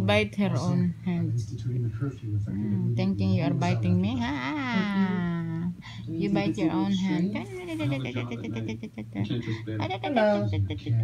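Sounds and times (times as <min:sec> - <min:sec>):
background voices talking: 0:00.0 - 0:11.0.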